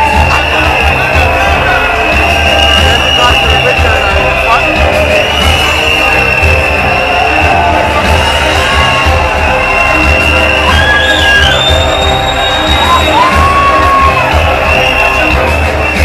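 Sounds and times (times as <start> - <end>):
concert music with heavy bass beat: 0.0 - 16.0
crowd cheering and whooping: 0.0 - 16.0.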